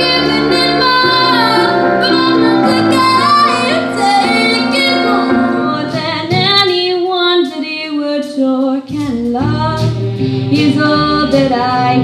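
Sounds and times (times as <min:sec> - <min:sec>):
girl singing into a microphone: 0:00.0 - 0:12.0
instrumental accompaniment: 0:00.0 - 0:12.0.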